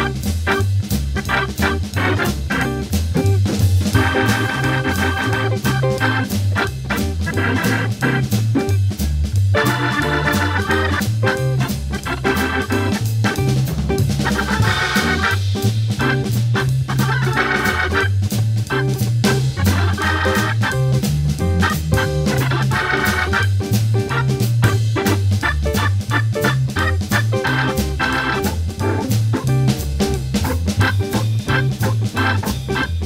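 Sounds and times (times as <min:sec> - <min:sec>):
bass line: 0:00.0 - 0:33.0
organ playing jazz blues: 0:00.0 - 0:33.0
steady drum beat: 0:00.0 - 0:33.0.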